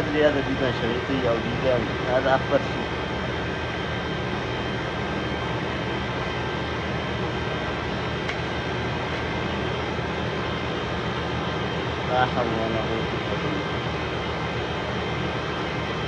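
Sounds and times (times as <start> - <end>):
high whine: 0.0 - 16.0
machine drone: 0.0 - 16.0.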